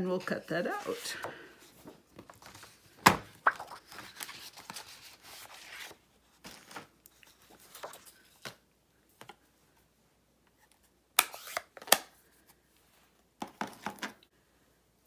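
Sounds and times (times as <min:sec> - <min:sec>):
paper rustling and sliding: 0:03.6 - 0:08.6.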